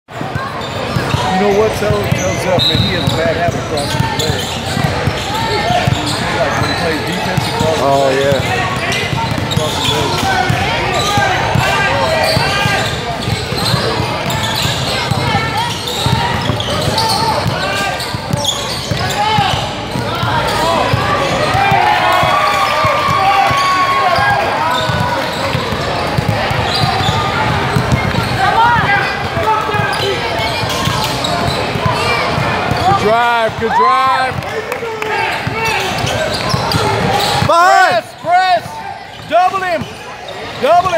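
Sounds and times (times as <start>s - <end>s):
chatter and calls echoing: 0.1s - 40.9s
players moving on court: 0.2s - 40.9s.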